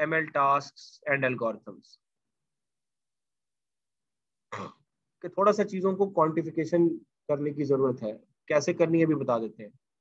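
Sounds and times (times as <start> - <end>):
man clearing throat: 4.5 - 4.9.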